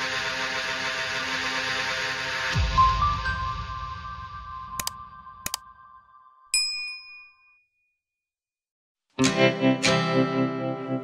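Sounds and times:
notification bell ding: 0:06.5 - 0:07.6.

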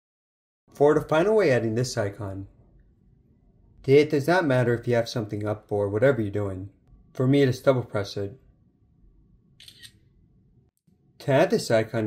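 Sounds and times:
camera shutter click: 0:09.6 - 0:10.0.

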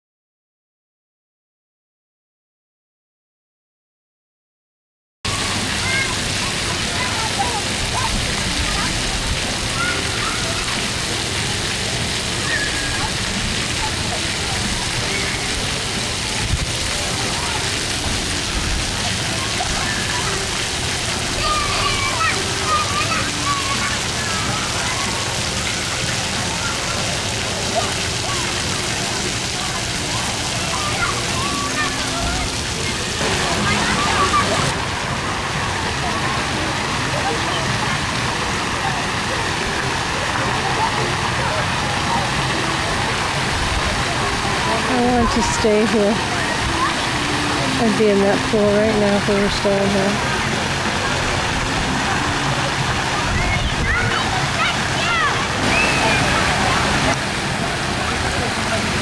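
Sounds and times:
fountain water pattering down: 0:05.3 - 0:59.0.

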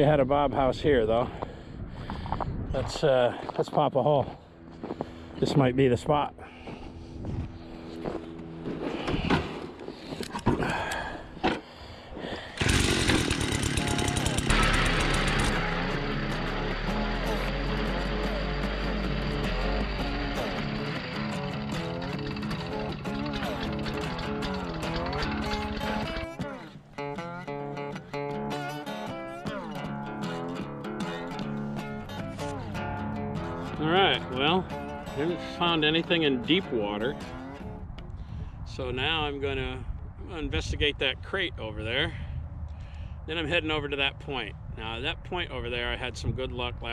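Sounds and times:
auger boring through ice: 0:12.6 - 0:26.8
ice auger engine running: 0:12.6 - 0:26.8
guitar music: 0:12.6 - 0:38.0.

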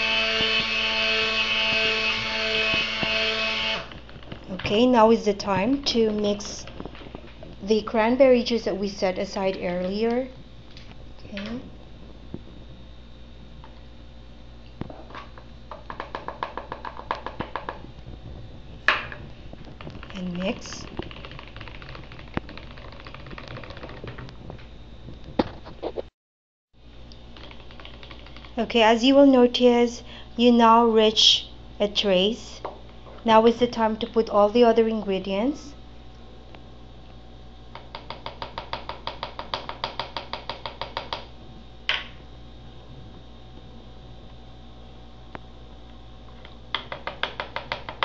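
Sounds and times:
stick blender humming and rattling: 0:00.0 - 0:07.6.

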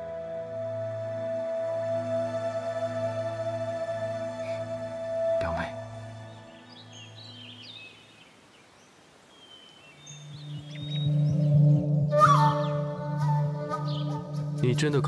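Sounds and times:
drama score with low notes: 0:00.0 - 0:07.6, 0:10.4 - 0:15.0
background music: 0:00.0 - 0:08.0, 0:10.4 - 0:15.0
bird chirps: 0:05.8 - 0:12.9, 0:13.8 - 0:14.3.

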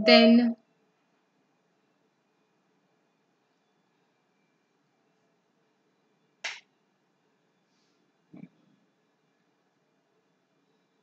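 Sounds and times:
faint room hiss: 0:00.0 - 0:11.0
short sharp click: 0:06.4 - 0:06.6.

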